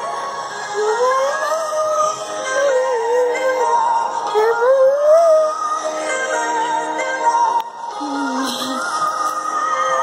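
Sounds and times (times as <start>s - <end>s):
accompanying music: 0.0s - 10.0s
girl singing slow melody: 0.0s - 10.0s.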